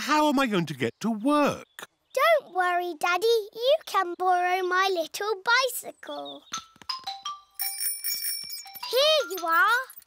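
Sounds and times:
bicycle bell ringing: 6.9s - 10.0s.

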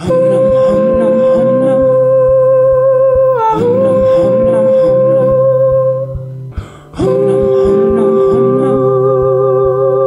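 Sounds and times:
hummed vocal harmonies: 0.0s - 10.0s
low rhythmic pulse: 0.0s - 10.0s.

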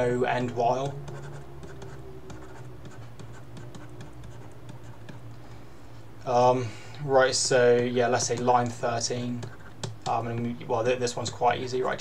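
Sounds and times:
low steady hum: 0.0s - 12.0s
stylus scratching on tablet: 0.4s - 5.3s, 8.0s - 11.5s.

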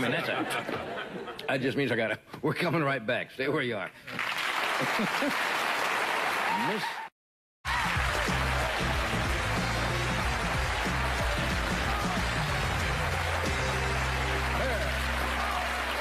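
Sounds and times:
audience laughter: 0.0s - 1.5s
audience applause: 4.2s - 7.0s, 7.7s - 16.0s
music with steady bass line: 7.8s - 16.0s.

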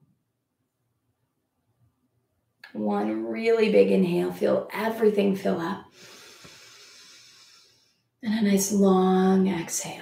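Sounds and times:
breathy inhale hiss: 5.9s - 8.0s.

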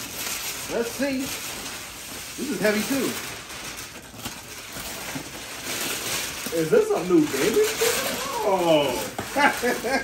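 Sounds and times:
wrapping paper tearing and rustling: 0.0s - 10.0s.

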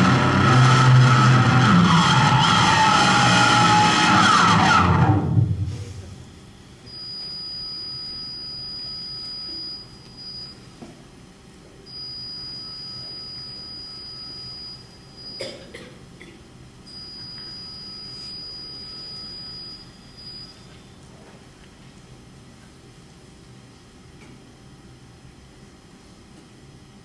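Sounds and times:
high-pitched electronic tones: 6.8s - 10.7s, 11.9s - 15.4s, 16.9s - 20.8s.

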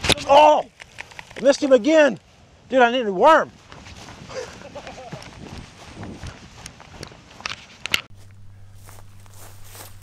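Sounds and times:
footsteps through grass: 0.0s - 10.0s
steady low hum: 8.1s - 10.0s.

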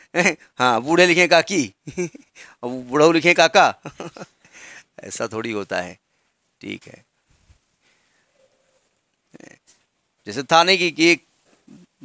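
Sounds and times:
man chuckling: 1.8s - 2.4s, 3.8s - 4.5s.

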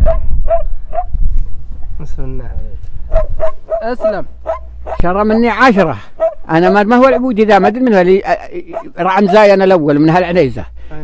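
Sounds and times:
dog barking: 0.0s - 1.1s, 3.1s - 7.8s, 8.7s - 9.6s
wind rumble on microphone: 0.0s - 5.4s.

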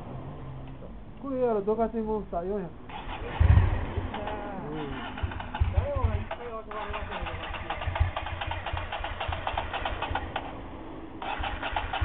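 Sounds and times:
loud low engine burst: 2.9s - 12.0s
motorcycle engine cranking: 2.9s - 12.0s.

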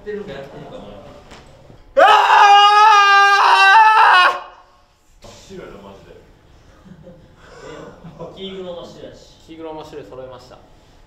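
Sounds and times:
young man yelling: 2.0s - 4.6s.

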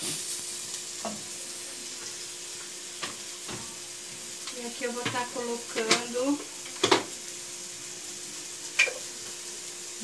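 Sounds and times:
sausage and garlic sizzling: 0.0s - 10.0s.

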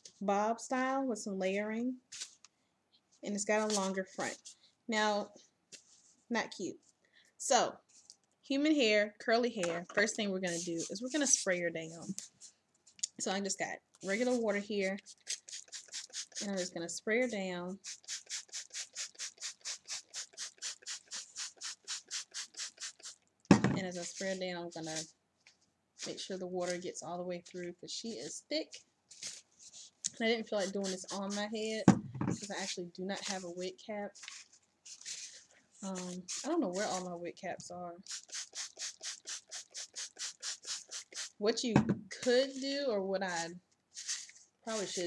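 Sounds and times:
spray bottle spritzing: 15.1s - 16.7s, 17.8s - 23.2s, 30.5s - 31.8s, 34.2s - 37.0s, 38.0s - 41.4s.

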